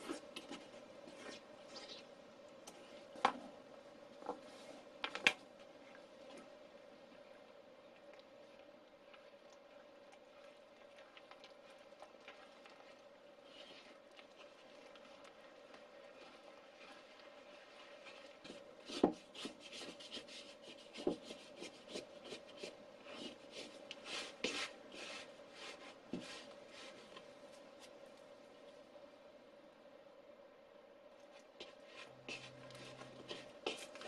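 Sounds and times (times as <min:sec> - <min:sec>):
spatula stirring dough in bowl: 0:00.0 - 0:28.2, 0:31.2 - 0:34.0.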